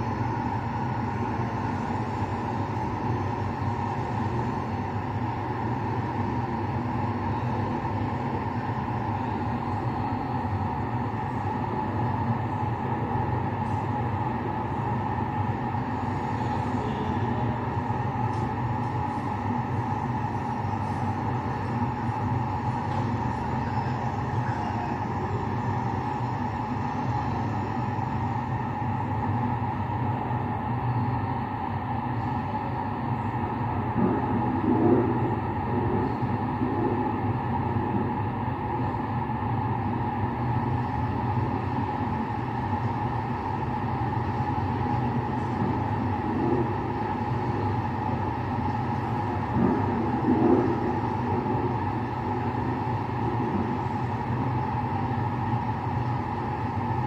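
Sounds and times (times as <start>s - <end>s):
low rumbling drone with hum: 0.0s - 57.0s.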